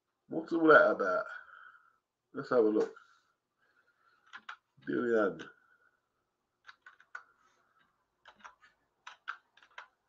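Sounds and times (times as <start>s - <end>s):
computer keyboard typing: 4.2s - 4.6s, 6.6s - 10.0s.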